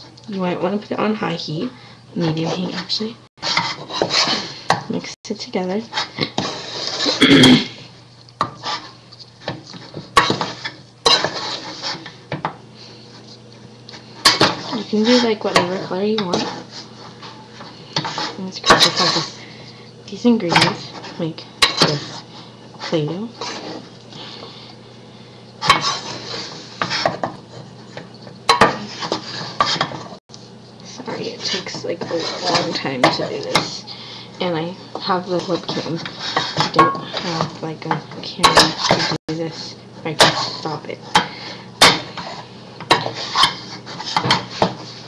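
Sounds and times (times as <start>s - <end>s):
wooden spoon scraping a pan: 2.2s - 7.2s, 8.4s - 24.8s, 25.5s - 30.2s, 30.9s - 45.0s.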